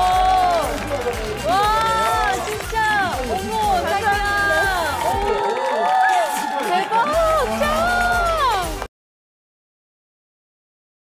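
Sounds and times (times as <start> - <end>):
upbeat background music: 0.0 - 8.9
people shouting excitedly: 1.5 - 8.8.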